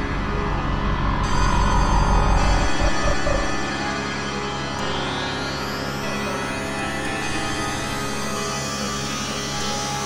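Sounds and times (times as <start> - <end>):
sustained synthesizer tones: 0.2 - 4.8
heavy deep bass: 0.8 - 3.7.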